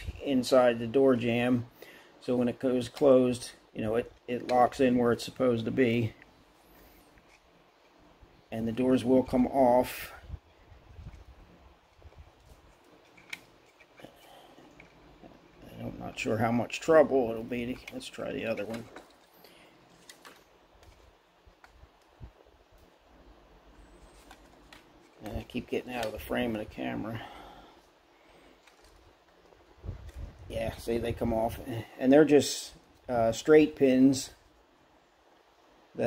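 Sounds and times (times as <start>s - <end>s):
faint handling noise: 1.2s - 31.9s
small plastic rubs: 10.9s - 15.6s, 23.8s - 26.6s.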